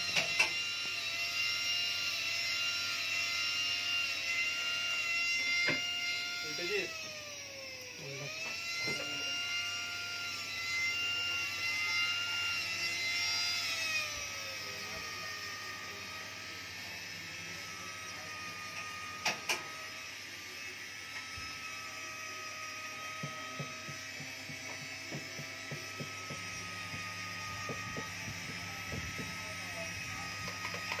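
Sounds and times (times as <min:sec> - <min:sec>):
micromotor handpiece whining: 0:00.0 - 0:31.0.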